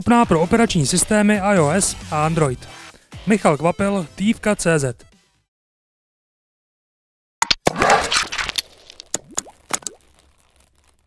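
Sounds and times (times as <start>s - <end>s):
quick pops rising in pitch: 7.4s - 10.4s.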